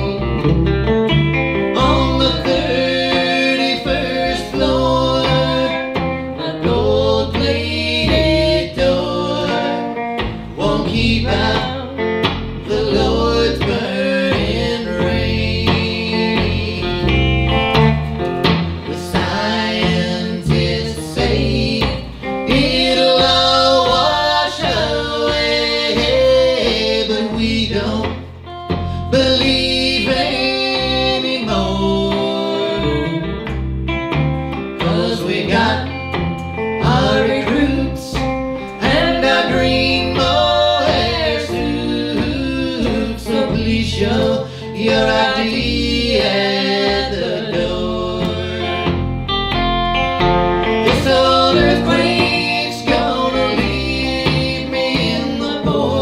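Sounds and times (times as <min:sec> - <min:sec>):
person singing: 0:00.0 - 0:00.6, 0:01.6 - 0:17.9, 0:18.8 - 0:33.6, 0:34.7 - 0:49.6, 0:50.7 - 0:56.0
country-rock band playing: 0:00.0 - 0:56.0
guitars: 0:00.0 - 0:56.0.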